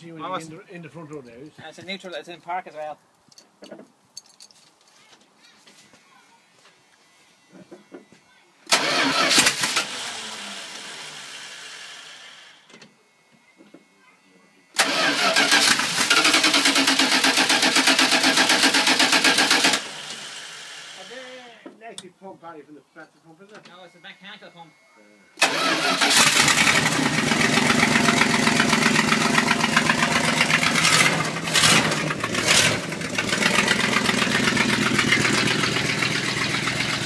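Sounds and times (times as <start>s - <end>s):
engine starting and running: 8.7s - 12.7s, 14.8s - 21.2s, 25.4s - 37.0s.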